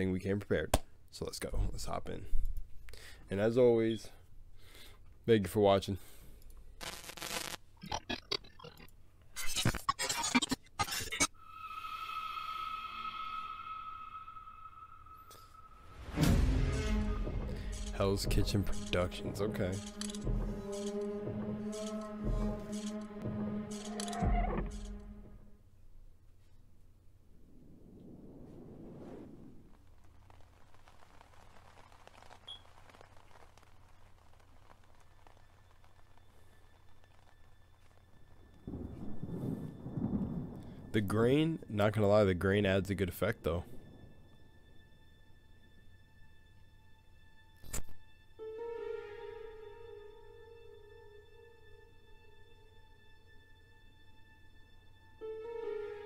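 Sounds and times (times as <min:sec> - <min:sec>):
high ringing tone: 0:11.4 - 0:16.0
low rumbling drone: 0:11.4 - 0:25.5.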